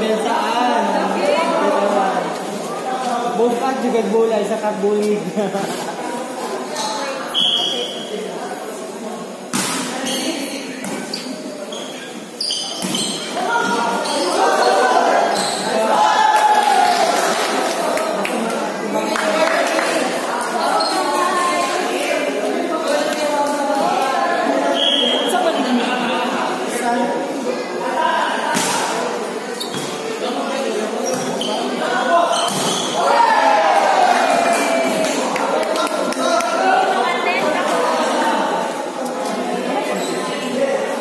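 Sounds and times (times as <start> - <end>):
people shouting and chattering: 0.0 - 41.0
crowd of spectators shouting: 14.4 - 18.1, 33.0 - 37.1.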